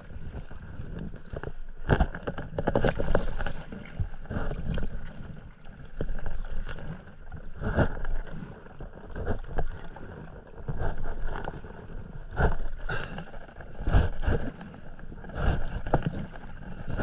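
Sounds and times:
paddle splashing through water: 0:00.1 - 0:17.0.

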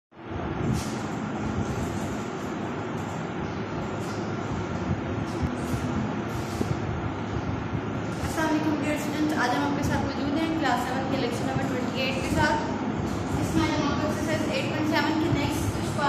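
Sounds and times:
steady background rush: 0:00.2 - 0:16.0.

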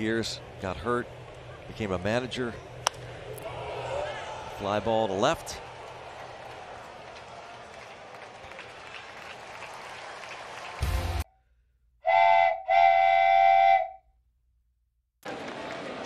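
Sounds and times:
ballpark crowd murmur: 0:00.4 - 0:10.7, 0:15.2 - 0:16.0
horn-like blasts: 0:12.0 - 0:14.0.

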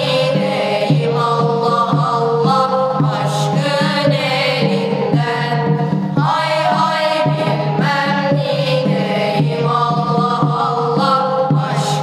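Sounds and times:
boys singing a hymn in unison: 0:00.0 - 0:12.0.

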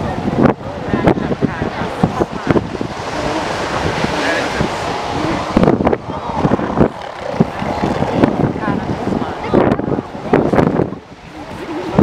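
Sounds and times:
surf: 0:00.0 - 0:12.0
wind: 0:00.0 - 0:12.0.

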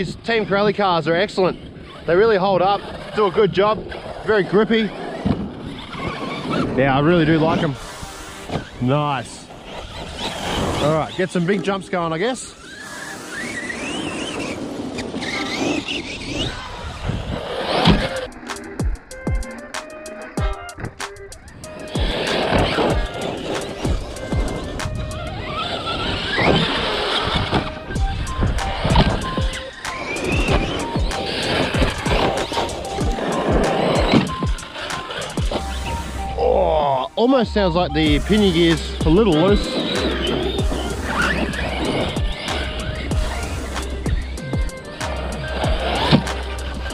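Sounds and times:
electric motor whining: 0:00.0 - 0:46.9.

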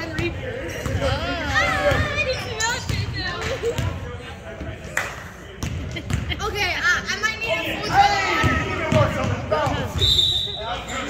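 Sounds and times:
players' voices echoing: 0:00.0 - 0:11.0
sneakers squeaking: 0:07.8 - 0:11.0.

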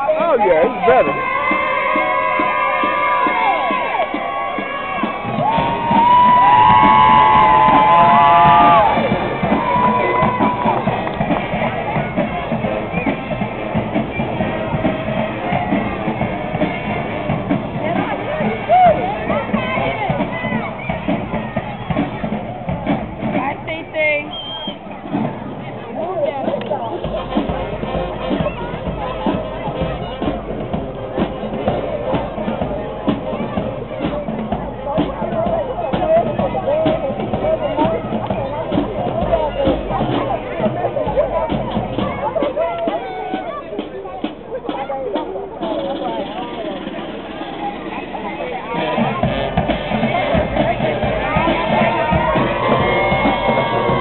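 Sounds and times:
drums: 0:00.0 - 0:54.0
marching band playing: 0:00.0 - 0:54.0
people talking: 0:00.0 - 0:54.0.

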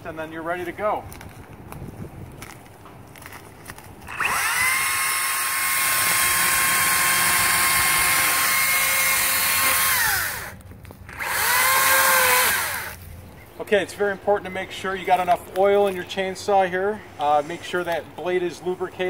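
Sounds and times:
electric chainsaw motor whine: 0:04.1 - 0:13.0.

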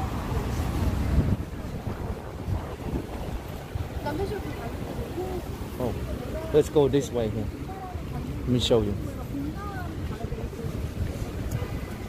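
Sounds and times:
wind buffeting microphone: 0:00.0 - 0:06.6
city street traffic: 0:00.0 - 0:12.0.

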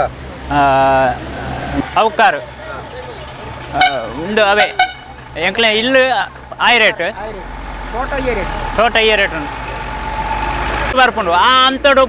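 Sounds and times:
men speaking loudly: 0:00.0 - 0:12.0.

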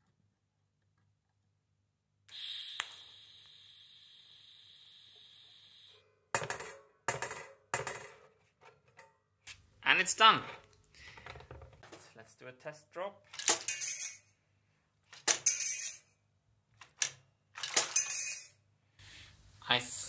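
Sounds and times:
faint steady hiss: 0:18.7 - 0:20.0.

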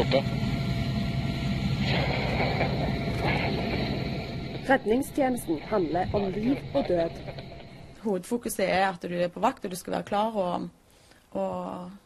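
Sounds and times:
helicopter drone: 0:00.0 - 0:08.0.

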